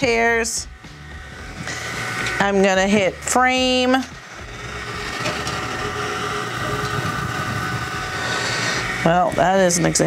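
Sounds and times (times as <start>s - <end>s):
stepper motors whirring: 0.0s - 10.0s.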